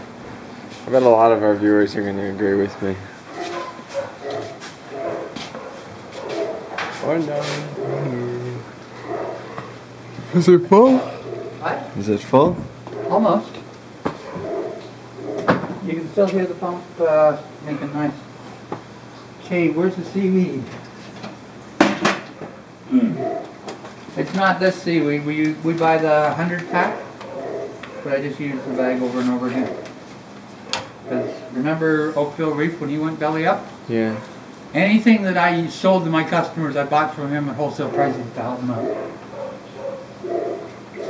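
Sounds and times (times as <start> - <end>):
voices murmuring: 0.0 - 41.0.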